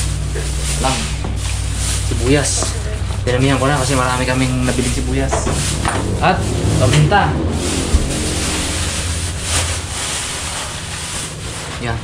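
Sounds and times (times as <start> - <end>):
plastic bag rustling: 0.0 - 6.8, 7.5 - 12.0.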